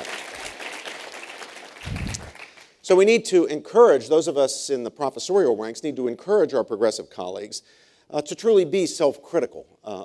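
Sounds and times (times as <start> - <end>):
audience applauding: 0.0 - 2.7.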